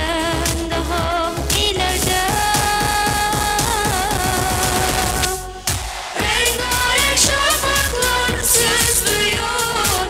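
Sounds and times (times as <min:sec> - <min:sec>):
pop backing track with drum beat: 0:00.0 - 0:10.0.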